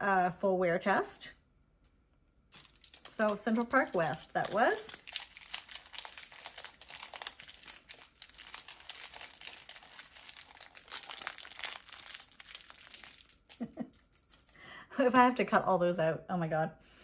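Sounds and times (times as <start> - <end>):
wrapping crinkling and rustling: 2.5 - 14.6.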